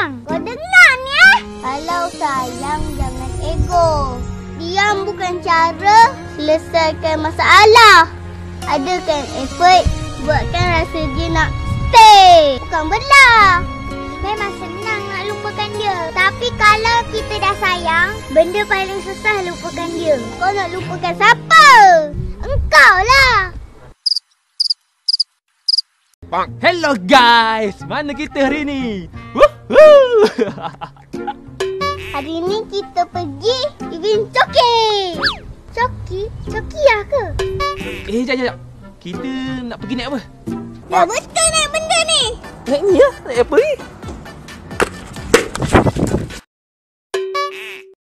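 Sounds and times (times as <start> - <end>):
music: 0.0 - 23.1, 26.2 - 46.4
cricket chirping: 24.0 - 26.0.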